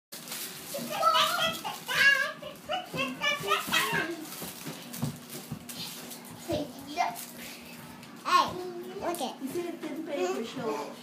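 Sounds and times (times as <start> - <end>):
children shouting and squealing: 0.8 - 4.2.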